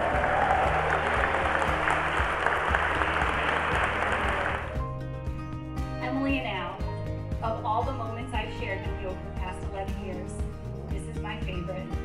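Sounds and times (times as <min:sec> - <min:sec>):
congregation applauding: 0:00.0 - 0:04.8
background music: 0:00.0 - 0:12.0.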